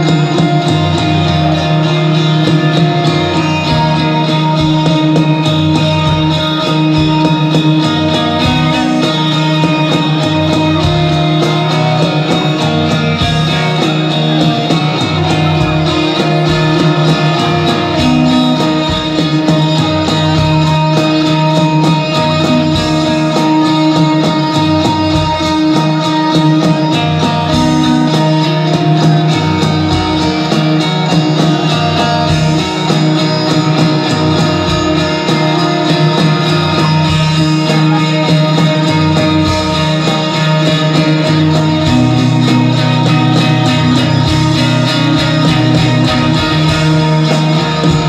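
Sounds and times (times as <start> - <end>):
electric guitars droning: 0.0 - 48.0.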